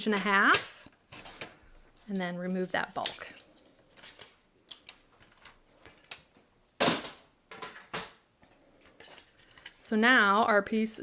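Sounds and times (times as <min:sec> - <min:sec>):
paper rustling: 0:08.8 - 0:09.8.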